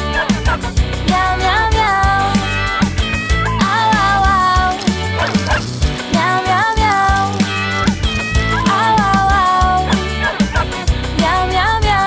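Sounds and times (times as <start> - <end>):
upbeat children's song: 0.0 - 12.0.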